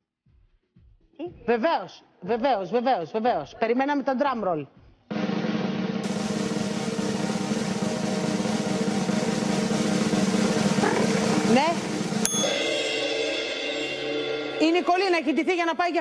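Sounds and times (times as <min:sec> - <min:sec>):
drum roll: 0:04.9 - 0:16.0
cymbal crash: 0:05.1 - 0:16.0.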